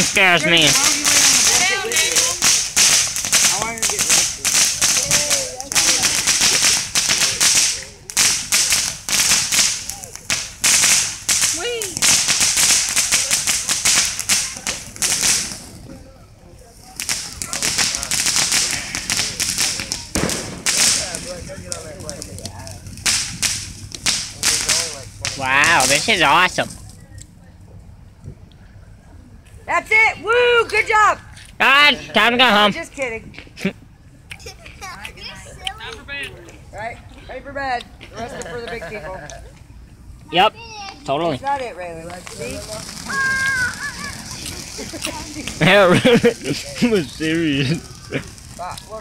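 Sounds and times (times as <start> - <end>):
firework fountain crackling and hissing: 0.0 - 49.0.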